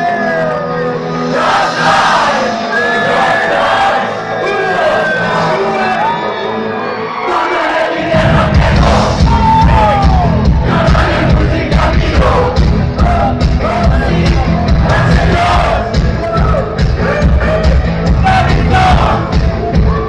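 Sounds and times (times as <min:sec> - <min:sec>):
crowd shouting and singing: 0:00.0 - 0:20.0
live band music: 0:07.8 - 0:20.0.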